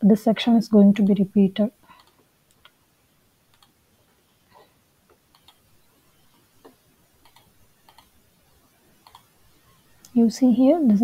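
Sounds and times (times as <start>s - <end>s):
computer mouse clicks: 1.0s - 1.2s, 1.9s - 2.8s, 3.5s - 3.8s, 5.1s - 8.2s, 9.0s - 9.4s.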